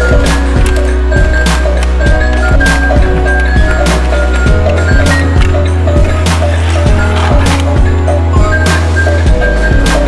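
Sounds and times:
plastic toy track clicking: 0.0s - 7.7s
simple electronic tune: 0.0s - 10.0s.

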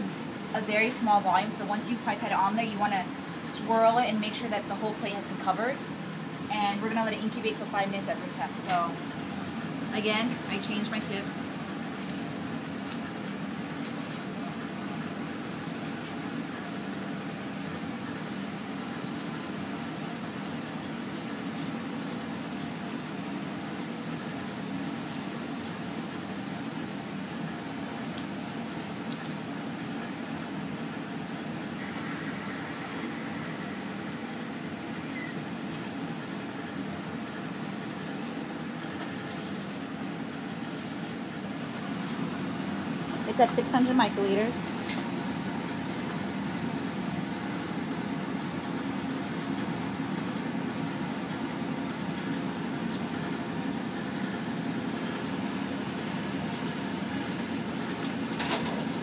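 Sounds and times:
blower fan humming: 0.0s - 59.0s.

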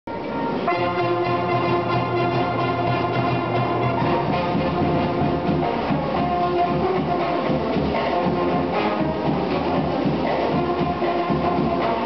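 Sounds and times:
wind band playing held chords: 0.1s - 12.0s.

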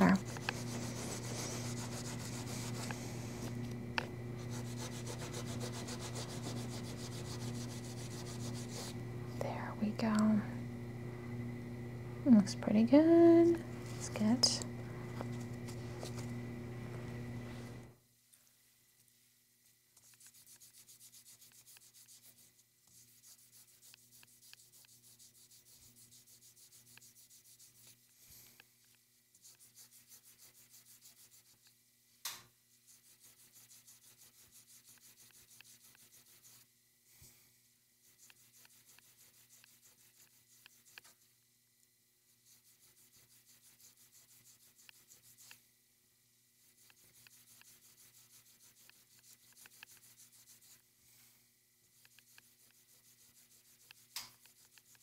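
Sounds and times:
abrasive pad rubbing enamel: 0.0s - 10.4s, 20.0s - 28.6s, 29.4s - 31.7s, 32.8s - 36.7s, 38.0s - 41.3s, 42.3s - 45.6s, 46.6s - 50.8s, 51.9s - 55.0s.

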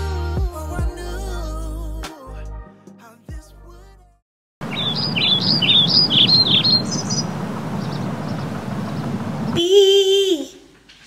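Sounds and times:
outdoor background rush: 4.6s - 9.6s
small bird chirping: 4.6s - 9.6s.

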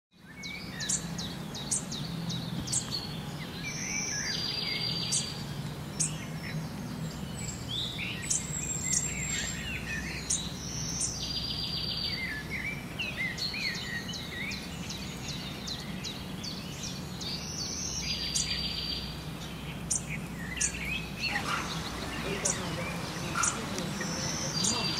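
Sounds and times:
songbirds chirping: 0.1s - 24.9s
buzzy bird trill: 0.4s - 24.9s.

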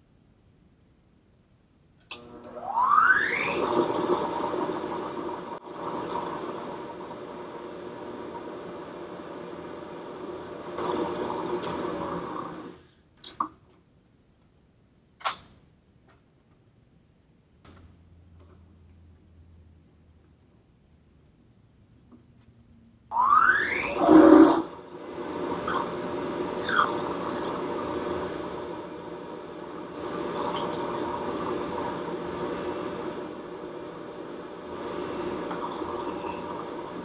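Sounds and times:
milling machine motor whine: 2.2s - 12.8s, 23.1s - 37.0s.

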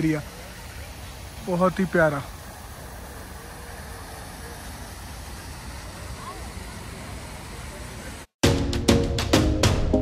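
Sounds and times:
road traffic rumble: 0.0s - 8.4s
steady hiss: 0.0s - 8.4s.

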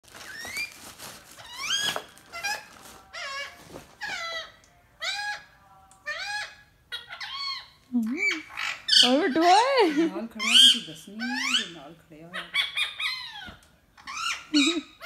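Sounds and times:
parrot squeaky calls: 0.2s - 0.8s, 1.4s - 15.0s.

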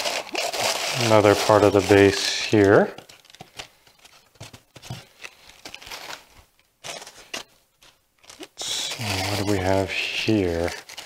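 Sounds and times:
plastic wrapping rustling: 0.0s - 11.0s.

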